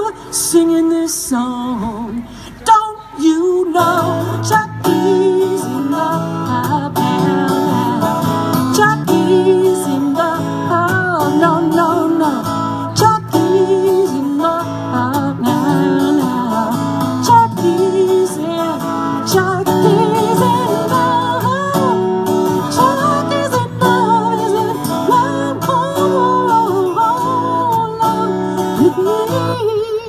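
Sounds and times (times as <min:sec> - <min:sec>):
person singing: 0:00.0 - 0:30.0
acoustic guitars strumming: 0:03.5 - 0:30.0.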